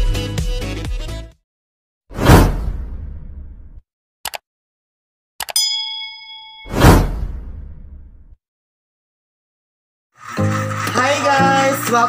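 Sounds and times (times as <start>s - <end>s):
whoosh: 2.1s - 3.8s, 6.7s - 8.4s.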